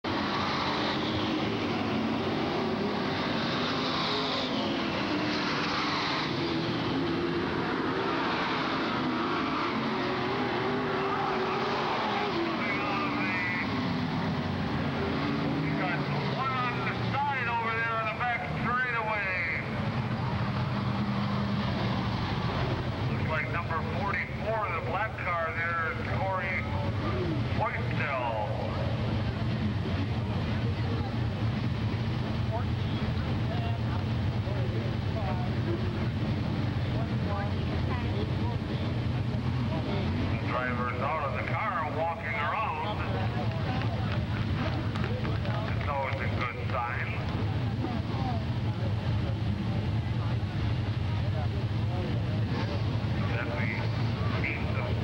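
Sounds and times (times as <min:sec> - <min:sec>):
race car engines passing: 0:00.0 - 0:55.0.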